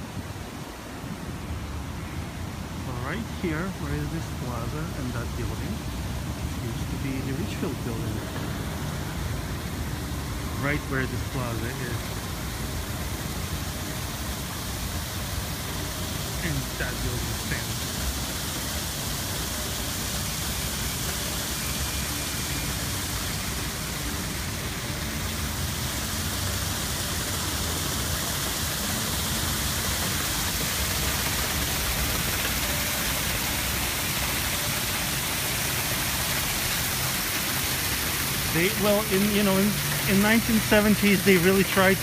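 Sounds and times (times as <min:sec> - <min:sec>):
fountain water rushing: 0:00.0 - 0:42.0.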